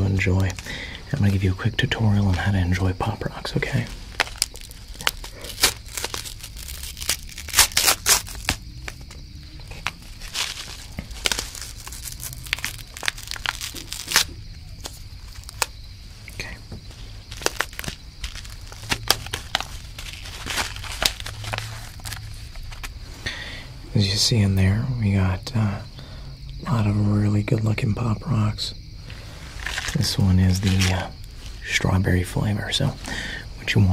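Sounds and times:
candy packet crinkling and tearing: 3.7 - 9.1, 9.7 - 15.7, 17.2 - 22.9, 29.5 - 31.4.

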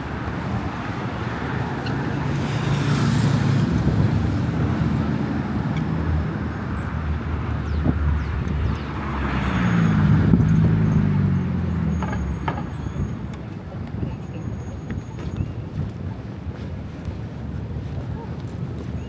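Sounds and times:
cars passing: 0.0 - 19.0.

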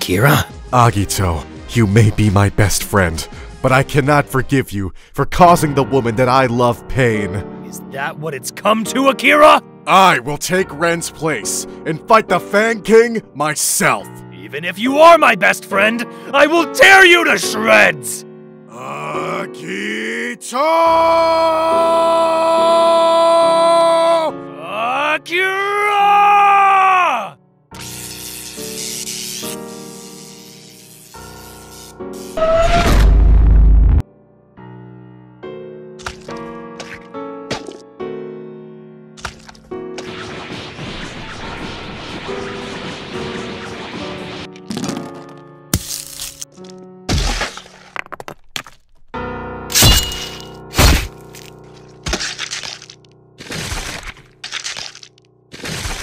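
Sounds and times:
dramatic background music: 0.0 - 4.7, 39.2 - 44.7
music: 0.0 - 48.0, 49.1 - 56.0
shouted battle yell: 19.1 - 27.4
cracking and smashing impacts: 39.2 - 49.0, 49.8 - 56.0.

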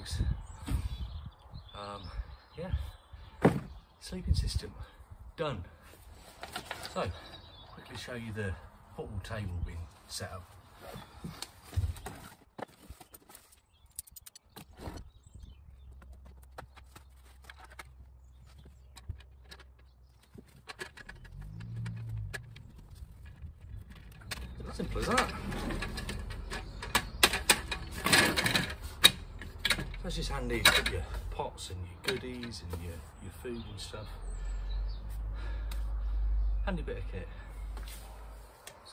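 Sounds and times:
folding table frame clicking and rattling: 24.0 - 30.0.

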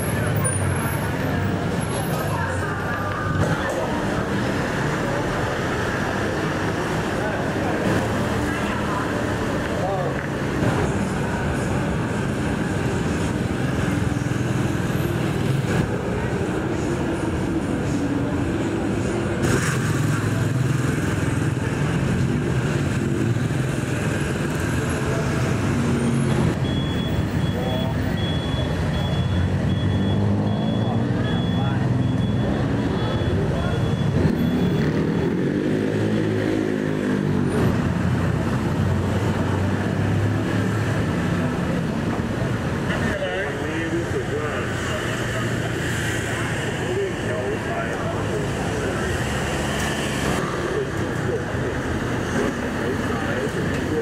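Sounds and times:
motor scooters passing: 0.0 - 26.6, 27.6 - 54.0
people talking: 0.0 - 37.0, 38.4 - 54.0
cars passing: 0.0 - 54.0.

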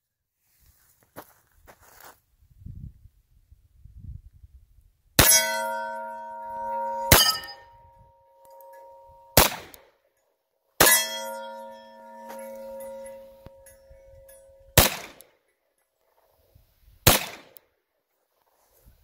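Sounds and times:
pistol shots: 5.2 - 5.6, 9.4 - 9.8, 14.8 - 15.2, 17.1 - 17.6
steel target clanging: 5.2 - 9.6, 10.8 - 15.2.

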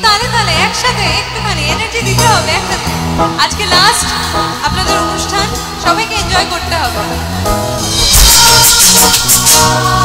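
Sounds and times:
woman singing: 0.0 - 7.2, 8.2 - 10.0
band accompaniment: 0.0 - 10.0.

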